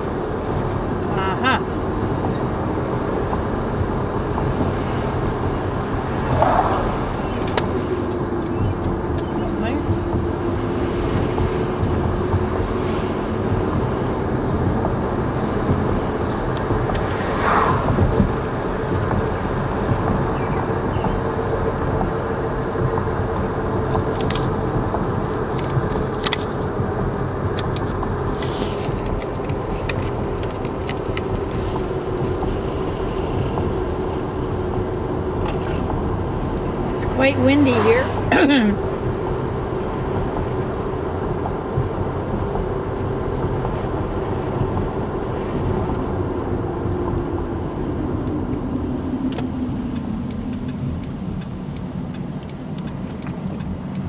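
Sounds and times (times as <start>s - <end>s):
car road and engine drone: 0.0s - 54.0s
faint clicks: 49.3s - 54.0s.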